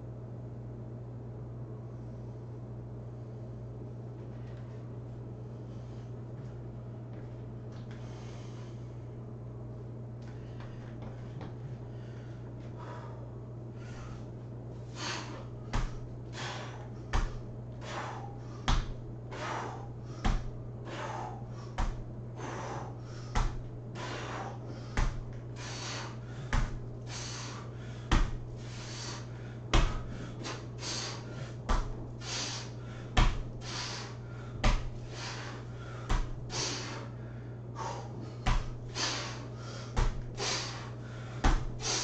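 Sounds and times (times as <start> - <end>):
man breathing hard: 7.8 - 9.2, 10.2 - 42.0
loud breathy exhale: 16.4 - 16.9, 17.8 - 18.4, 20.9 - 21.7, 24.0 - 25.0, 32.2 - 38.2, 38.9 - 42.0.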